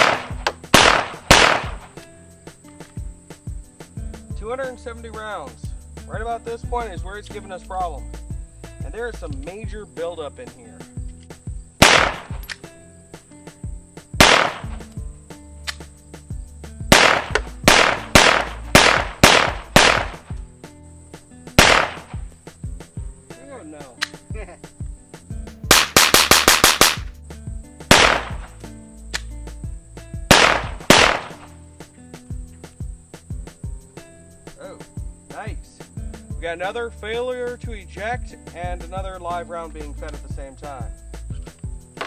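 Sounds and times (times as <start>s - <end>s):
pistol shots: 0.0s - 2.0s, 11.8s - 12.6s, 14.2s - 14.8s, 16.9s - 20.4s, 21.6s - 22.2s, 25.7s - 27.1s, 27.9s - 28.5s, 30.3s - 31.5s.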